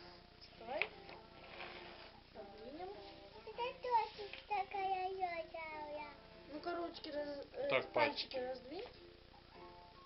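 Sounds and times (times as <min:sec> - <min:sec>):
child singing wordlessly: 0:03.4 - 0:06.2.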